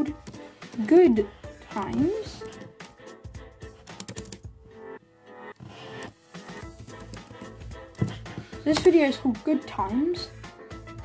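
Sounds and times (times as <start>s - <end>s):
background music: 0.0s - 11.0s
keyboard typing: 3.8s - 4.5s.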